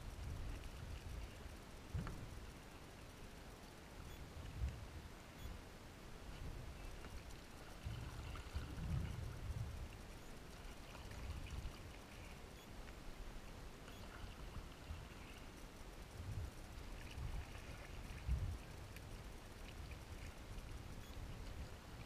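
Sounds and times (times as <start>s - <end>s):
low uneven rumble: 6.0s - 22.0s.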